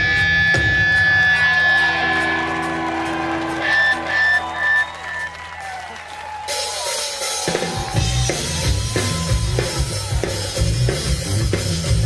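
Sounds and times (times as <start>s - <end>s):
live rock band chord: 7.7s - 12.0s.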